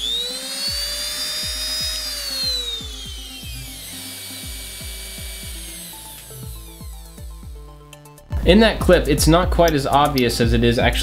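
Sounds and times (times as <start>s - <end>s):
rotary tool whining and winding down: 0.0s - 8.2s
background music with steady beat: 0.0s - 11.0s.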